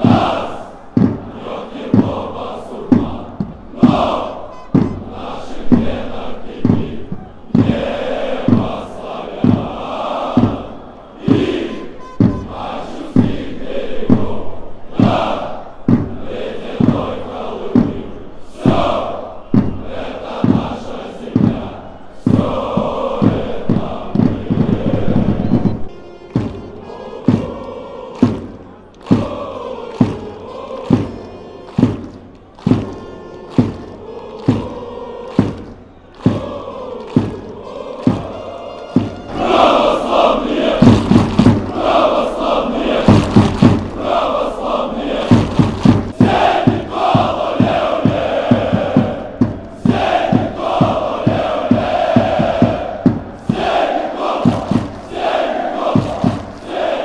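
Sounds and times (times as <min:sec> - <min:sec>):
crowd chanting: 0:00.0 - 0:57.0
loud steady drum beat: 0:00.0 - 0:57.0.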